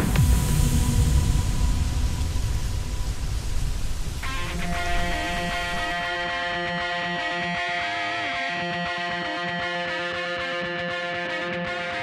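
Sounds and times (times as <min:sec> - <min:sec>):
music with heavy deep bass: 0:00.0 - 0:07.6
sustained guitar notes: 0:04.2 - 0:12.0.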